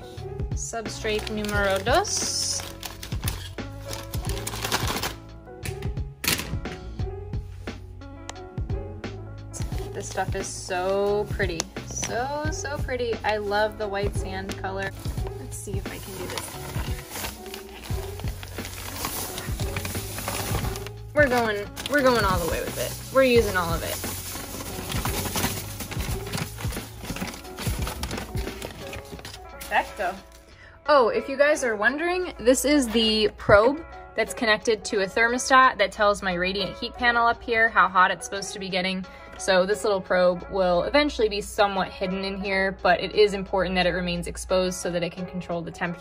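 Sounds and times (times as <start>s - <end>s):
background music: 0.0s - 46.0s
plastic bag crinkling: 1.0s - 5.2s, 14.4s - 30.4s
scissors snipping plastic bag: 1.0s - 5.2s, 14.5s - 30.3s
background music with a beat: 5.2s - 10.8s.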